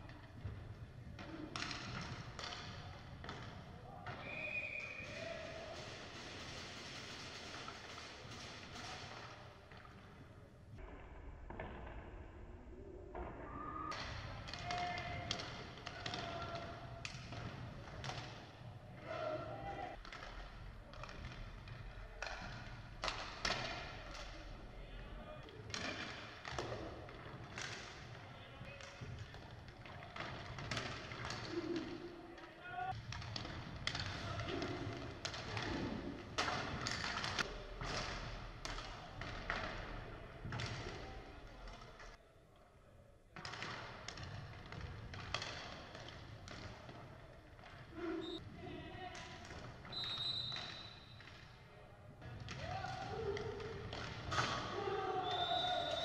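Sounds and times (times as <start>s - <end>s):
hockey sticks and puck clacking: 0.0s - 10.2s, 13.2s - 42.2s, 43.4s - 48.4s, 49.0s - 56.0s
players shouting: 54.4s - 56.0s.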